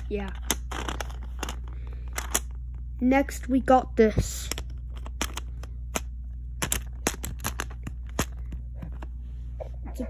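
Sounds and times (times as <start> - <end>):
steady low hum: 0.0 - 10.0
plastic bricks clicking: 0.3 - 2.6, 4.5 - 8.5.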